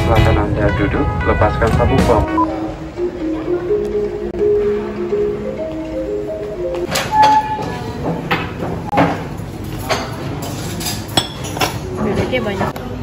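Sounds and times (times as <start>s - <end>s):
melodic tune: 0.0s - 7.8s
cutlery and dishes clinking: 8.3s - 12.4s.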